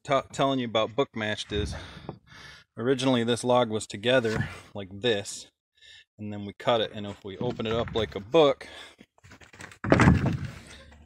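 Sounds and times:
heavy wooden board thud: 0:09.8 - 0:10.7.

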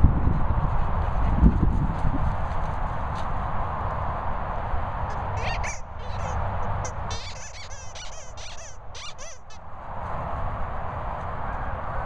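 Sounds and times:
rubber dog toy squeaking: 0:05.1 - 0:09.6.

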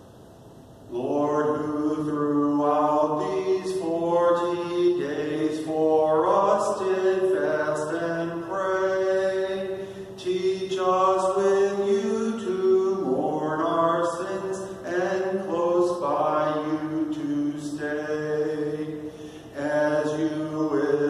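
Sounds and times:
man singing slowly: 0:00.9 - 0:21.0.

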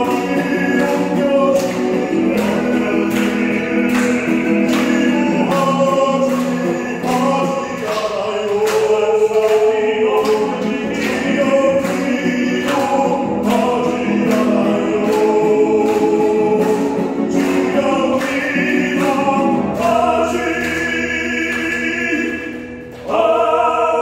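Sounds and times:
strummed acoustic guitar: 0:00.0 - 0:23.5
voices singing together: 0:00.0 - 0:24.0.

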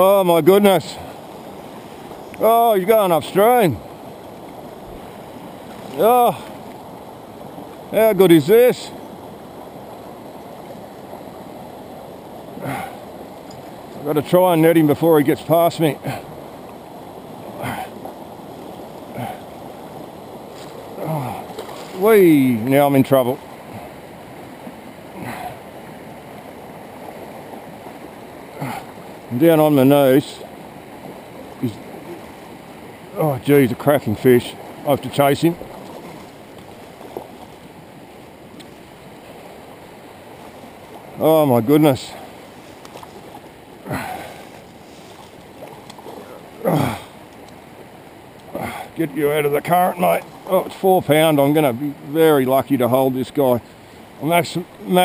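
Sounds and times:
stream rushing over riffles: 0:00.0 - 0:55.0.

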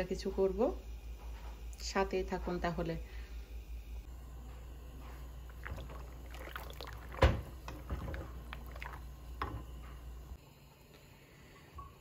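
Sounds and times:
boiling water sloshing: 0:04.4 - 0:10.4.

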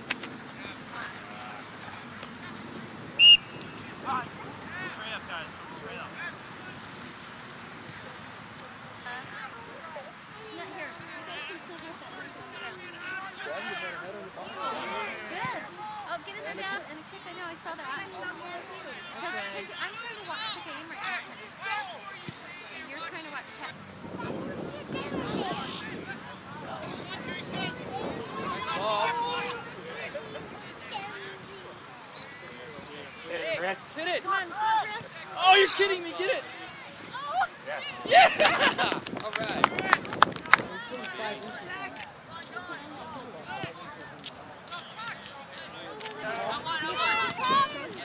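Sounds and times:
faint sideline voices: 0:00.0 - 0:48.0
spectators chattering and calling: 0:00.0 - 0:48.0
referee's whistle blast: 0:03.2 - 0:03.7.

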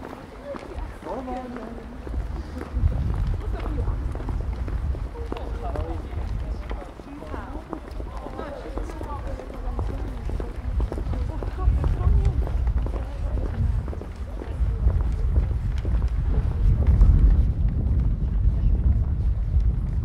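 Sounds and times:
people talking: 0:00.0 - 0:19.4
steady low rumble: 0:01.9 - 0:06.9, 0:09.6 - 0:20.0.

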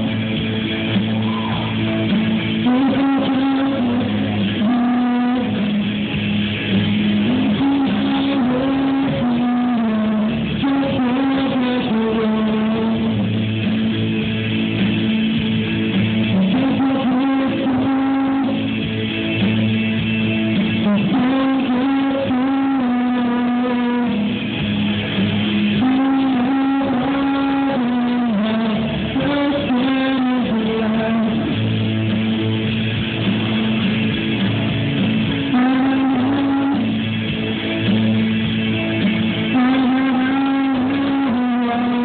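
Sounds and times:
backing track music: 0:00.0 - 0:42.0
man singing karaoke: 0:02.5 - 0:05.9, 0:07.2 - 0:13.4, 0:16.3 - 0:18.8, 0:20.8 - 0:24.4, 0:25.8 - 0:31.9, 0:35.4 - 0:37.2, 0:39.4 - 0:42.0.

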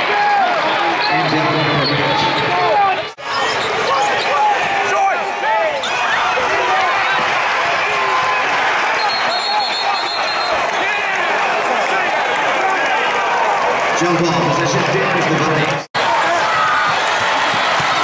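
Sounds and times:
crowd noise: 0:00.0 - 0:18.0
referee's whistle: 0:08.9 - 0:10.8.

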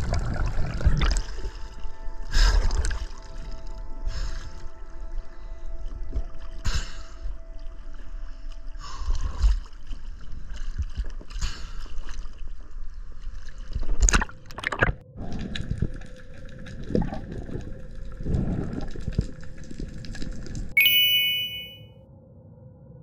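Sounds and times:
water sloshing and gurgling: 0:00.0 - 0:20.7
muffled underwater rumbles and bubbling: 0:00.0 - 0:20.8
ringing tone: 0:20.8 - 0:21.8.

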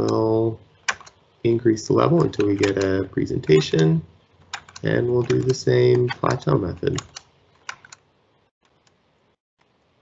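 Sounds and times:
computer clicks: 0:00.8 - 0:01.2, 0:02.2 - 0:08.0.

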